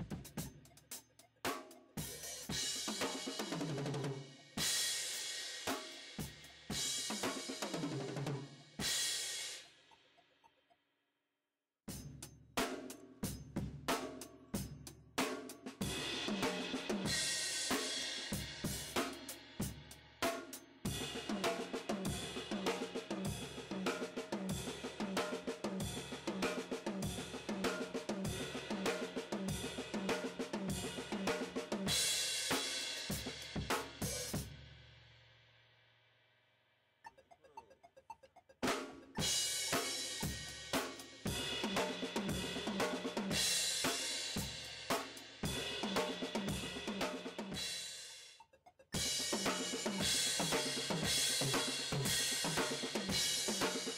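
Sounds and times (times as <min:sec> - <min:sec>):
drum kit played fast: 0:00.0 - 0:09.7, 0:11.9 - 0:34.7, 0:38.6 - 0:48.3, 0:49.0 - 0:53.9.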